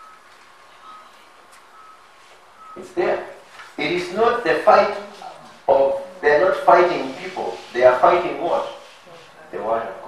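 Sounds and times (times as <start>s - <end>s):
high-pitched electronic beeps: 0.0s - 3.4s.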